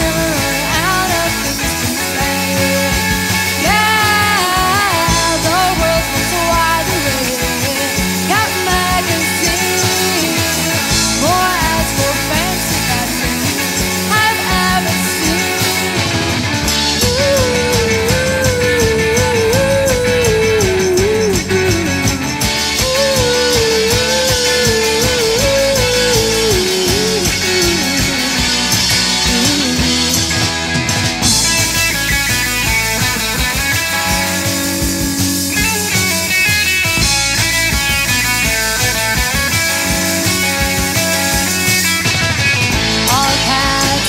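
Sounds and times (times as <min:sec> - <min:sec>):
pop-punk band playing: 0:00.0 - 0:44.0.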